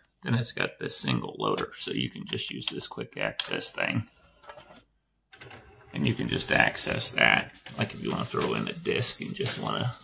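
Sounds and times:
cd changer mechanism running: 0:05.3 - 0:10.0.

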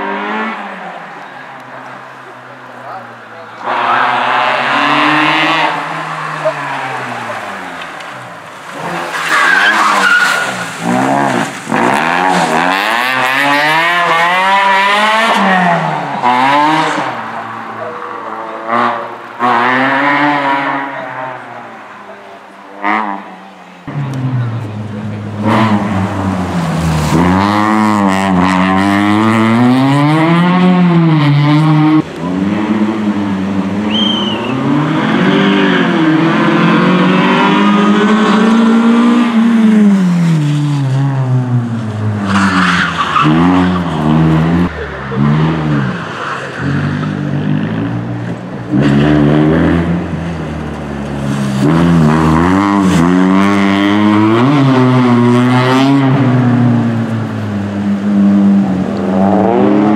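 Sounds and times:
car engine revving hard: 0:03.6 - 0:07.8, 0:09.8 - 0:21.4, 0:24.1 - 0:59.9.

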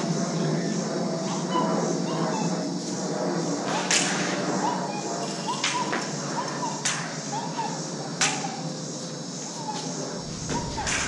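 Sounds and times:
sharp whip-like crack: 0:03.7 - 0:04.4, 0:06.8 - 0:07.2, 0:08.2 - 0:08.5, 0:10.4 - 0:11.0
lightsaber hum: 0:09.8 - 0:11.0
lightsaber swing glides: 0:10.1 - 0:11.0.

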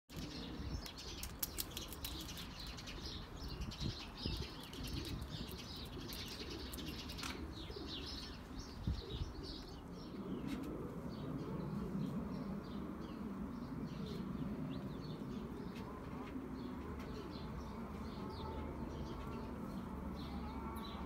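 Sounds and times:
small birds chirping: 0:00.1 - 0:21.0
steady low rumble: 0:08.2 - 0:21.0.

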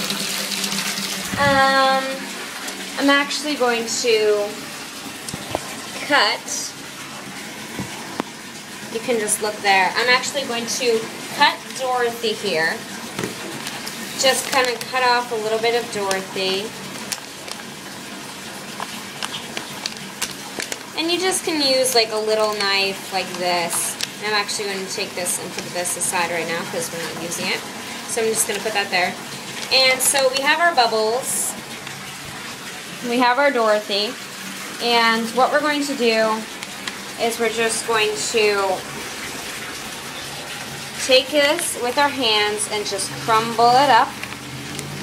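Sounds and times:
bath tap running: 0:00.0 - 0:45.0.

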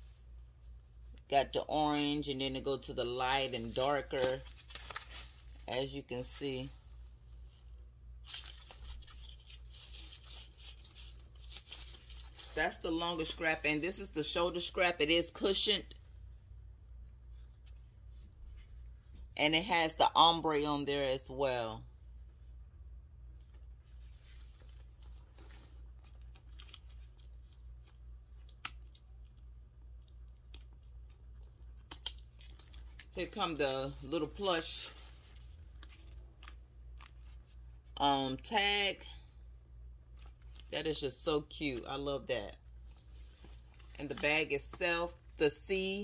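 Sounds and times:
rustling of leather strap and tissue paper: 0:03.1 - 0:13.4, 0:23.5 - 0:28.0.

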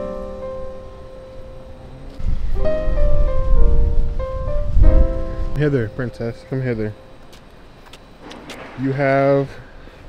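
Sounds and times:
steady low rumble: 0:00.0 - 0:10.0
man talking: 0:05.6 - 0:07.0, 0:08.6 - 0:09.7.

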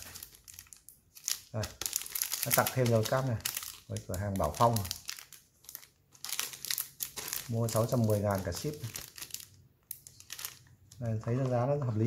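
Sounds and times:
plastic bag crinkling: 0:00.0 - 0:11.7.

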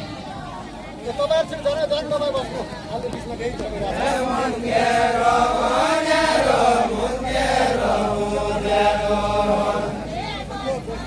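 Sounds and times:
men singing in chorus: 0:03.9 - 0:10.2.

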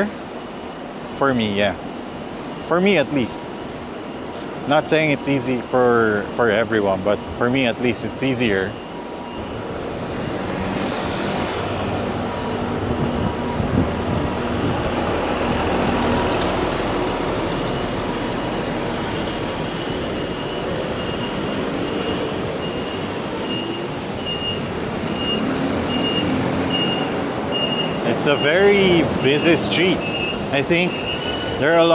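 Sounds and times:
city traffic road noise: 0:00.0 - 0:31.9
high beep: 0:19.2 - 0:31.9.

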